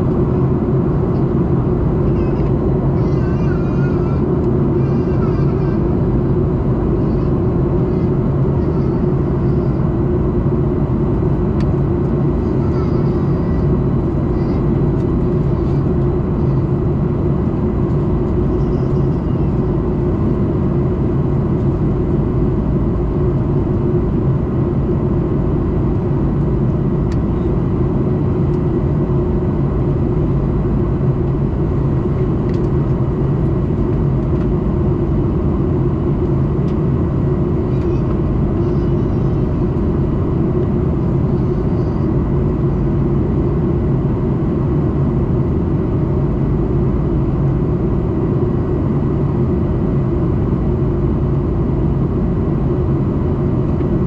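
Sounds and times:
deep drone of jet engines: 0:00.0 - 0:54.0.

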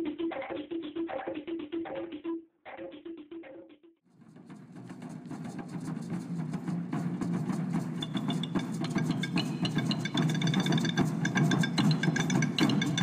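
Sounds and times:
wooden drums playing: 0:04.2 - 0:13.0.

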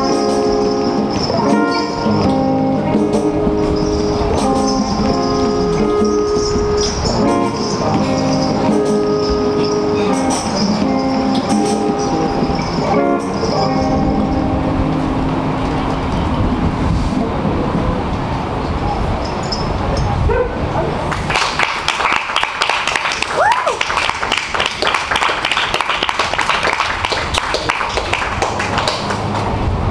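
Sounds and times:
electric guitar chords: 0:00.0 - 0:18.6
people clapping: 0:21.0 - 0:29.9.

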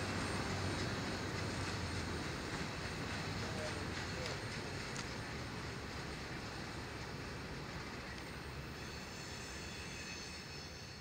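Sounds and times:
freight train rumbling: 0:00.0 - 0:11.0.

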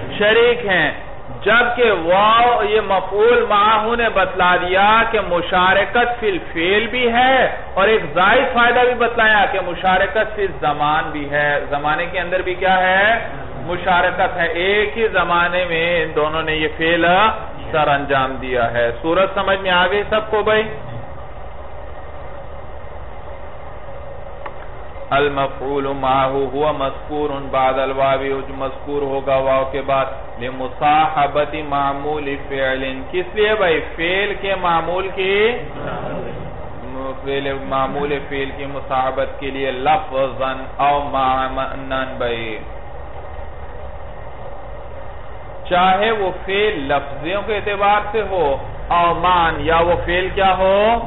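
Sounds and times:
low hum with hiss: 0:00.0 - 0:51.0.

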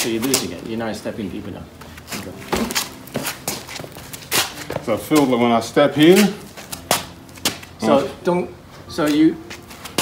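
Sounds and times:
shoes scuffing on pavement: 0:01.7 - 0:08.2, 0:09.0 - 0:10.0.

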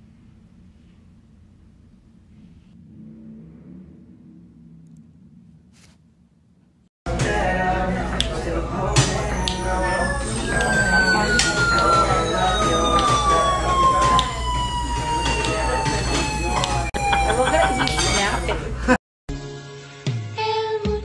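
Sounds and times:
background chatter: 0:07.1 - 0:18.9
straw whistling tone: 0:08.8 - 0:18.7.

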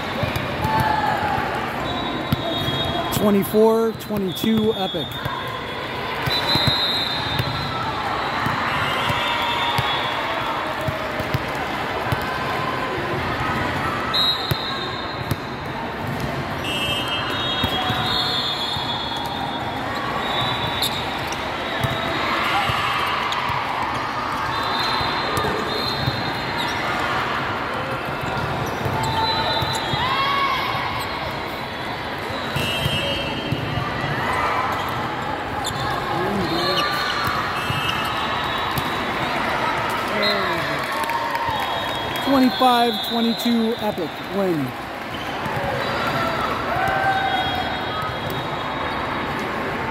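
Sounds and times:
hubbub of voices: 0:00.0 - 0:49.9
sneaker squeaks: 0:01.8 - 0:03.2, 0:06.2 - 0:10.1, 0:14.1 - 0:23.5, 0:24.4 - 0:27.0, 0:28.1 - 0:40.7, 0:41.5 - 0:49.3.

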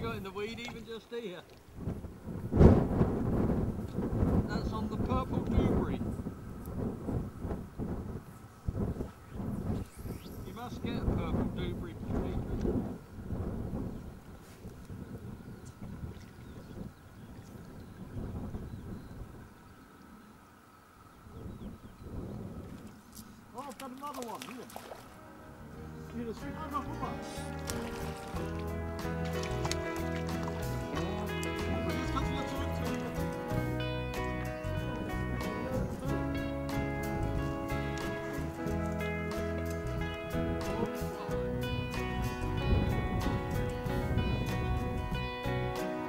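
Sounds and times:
wind buffeting microphone: 0:01.6 - 0:45.8.

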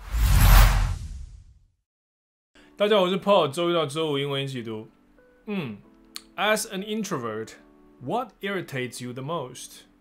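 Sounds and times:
whoosh: 0:00.0 - 0:01.6.

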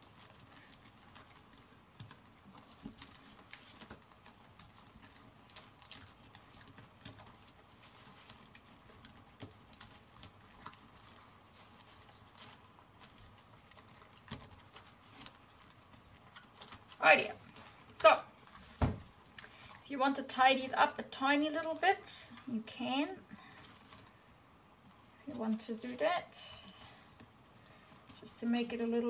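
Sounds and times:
flax strips rustling and clicking: 0:00.0 - 0:29.0.

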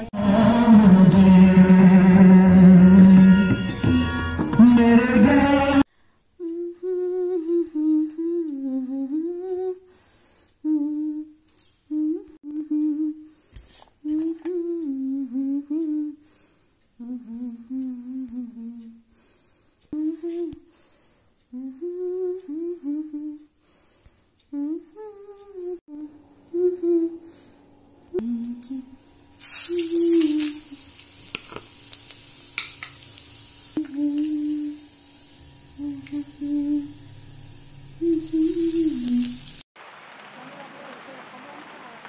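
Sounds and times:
person humming a tune: 0:00.0 - 0:09.9, 0:10.6 - 0:13.4, 0:14.0 - 0:16.3, 0:16.9 - 0:19.2, 0:19.9 - 0:20.7, 0:21.4 - 0:23.6, 0:24.4 - 0:27.5, 0:28.1 - 0:30.8, 0:33.8 - 0:39.6.

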